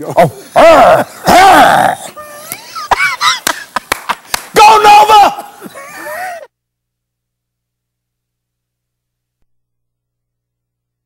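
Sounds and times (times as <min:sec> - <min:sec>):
men laughing hard: 0:00.0 - 0:04.3, 0:05.4 - 0:06.5.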